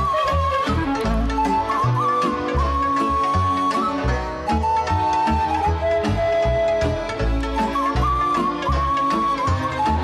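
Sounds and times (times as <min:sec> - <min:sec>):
folk band playing: 0:00.0 - 0:10.0
long held lead melody: 0:00.0 - 0:10.0
pulsing bass and strings: 0:00.0 - 0:10.0.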